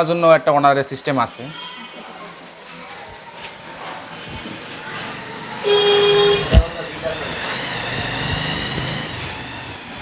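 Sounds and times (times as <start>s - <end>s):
background murmur: 0.0s - 10.0s
horn-like toot: 5.6s - 6.6s.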